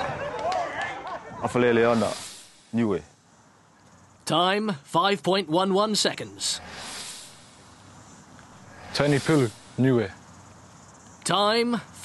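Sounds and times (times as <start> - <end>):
faint outdoor background hiss: 0.0 - 12.0.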